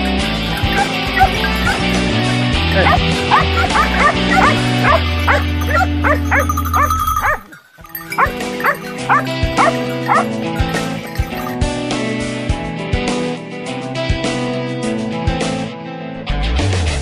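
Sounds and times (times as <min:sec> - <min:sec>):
hounds yelping and baying: 0:00.0 - 0:11.6
background music: 0:00.0 - 0:17.0.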